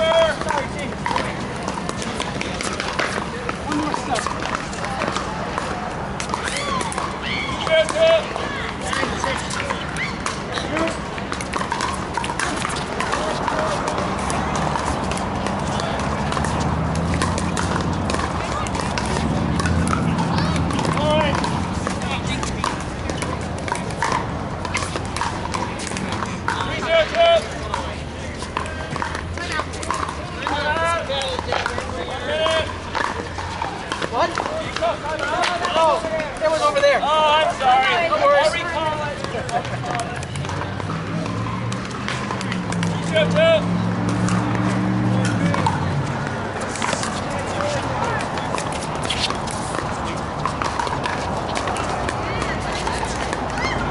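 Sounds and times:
paddles hitting plastic ball: 0.0 - 36.8, 38.4 - 43.2, 44.0 - 53.9
voices calling out: 0.0 - 53.9.

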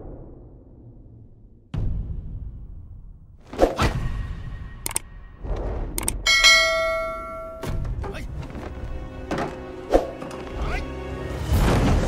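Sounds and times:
trailer music: 0.0 - 6.7, 7.4 - 12.0
click: 4.8 - 5.0, 6.0 - 6.2
bright bell ding: 6.3 - 7.8.

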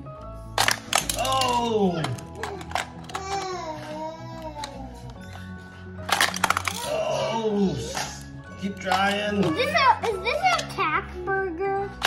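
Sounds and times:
background music: 0.0 - 12.0
toy car clicking on plastic track: 8.7 - 10.8.

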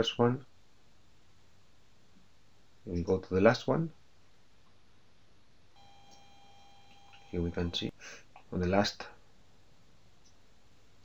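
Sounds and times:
faint hiss: 0.0 - 11.0
high electronic tone: 5.8 - 7.9.

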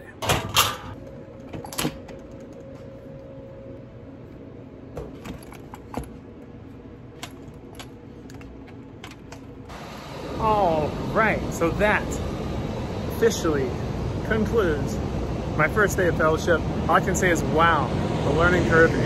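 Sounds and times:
faint steady hum: 0.0 - 19.0.

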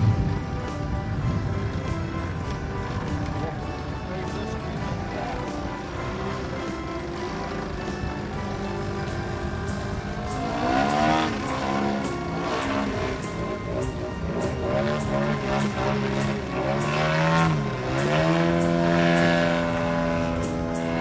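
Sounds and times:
model plane engine and propeller: 0.0 - 21.0.

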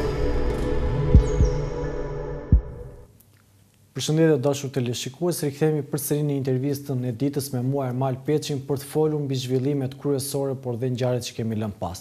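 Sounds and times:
deep bass thumps: 0.0 - 1.6, 2.5 - 2.8
intro jingle music: 0.0 - 3.1.

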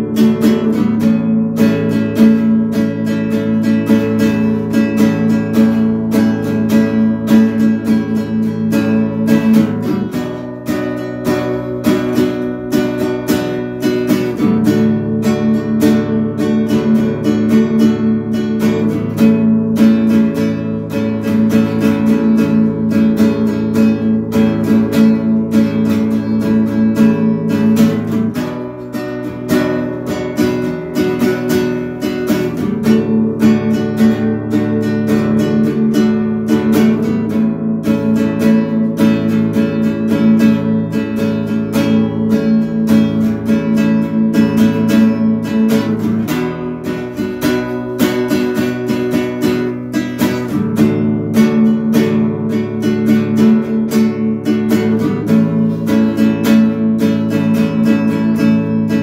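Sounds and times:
acoustic guitar strummed: 0.0 - 59.0.

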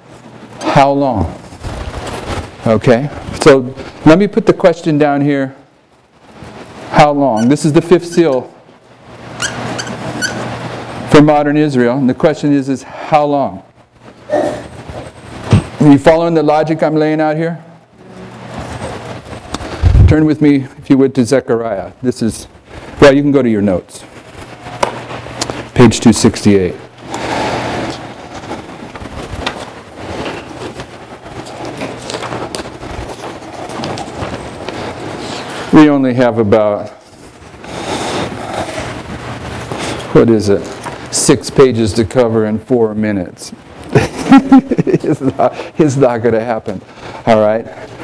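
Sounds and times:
paper rustling: 1.2 - 4.1, 24.0 - 41.2
marker squeaks: 7.3 - 8.4, 9.4 - 10.6
marker scratching on whiteboard: 9.4 - 10.5.

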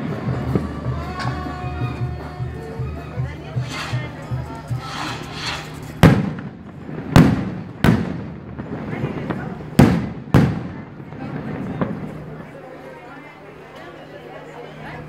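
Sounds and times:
crowd murmur: 0.0 - 15.0
firework bangs with echo: 3.6 - 12.4.

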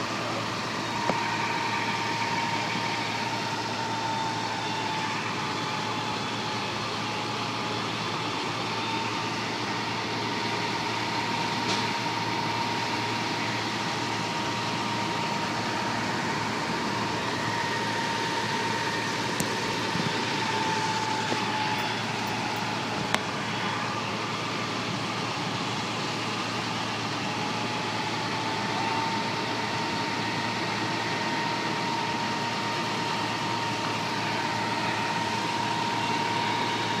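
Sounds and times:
fire truck engine drone: 0.0 - 37.0.

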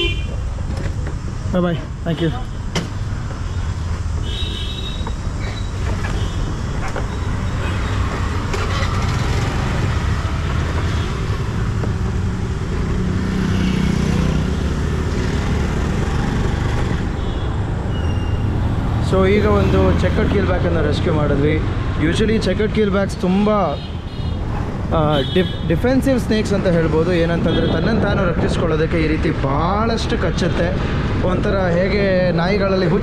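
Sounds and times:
street traffic noise: 0.0 - 33.0.

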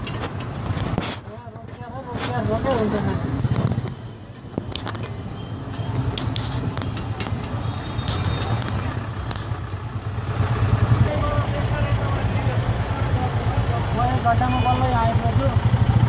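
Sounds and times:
low vehicle rumble: 0.0 - 16.0
people talking: 1.1 - 3.5, 11.0 - 15.6.

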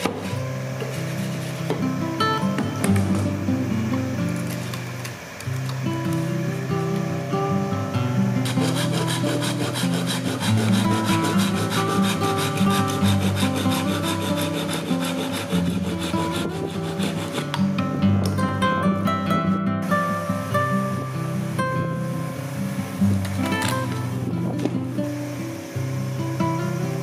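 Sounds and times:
acoustic guitar music: 0.0 - 27.0
hand saw cutting bamboo: 8.4 - 17.6.

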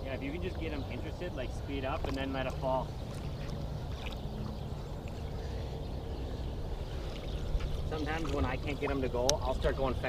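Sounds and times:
low rumble of water: 0.0 - 10.0.

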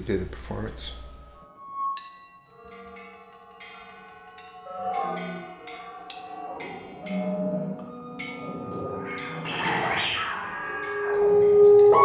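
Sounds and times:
struck bell-like notes: 0.9 - 12.0.

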